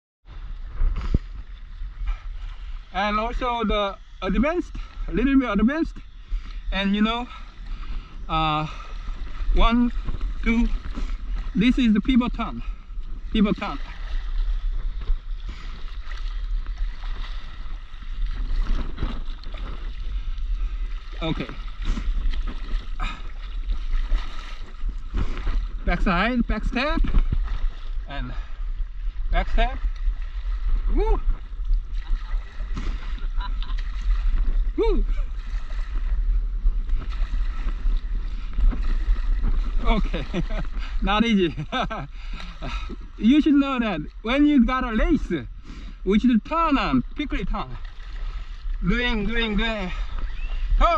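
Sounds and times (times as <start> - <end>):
wind rumble on microphone: 0.2 - 50.9
water splashing from paddle strokes: 0.3 - 50.9.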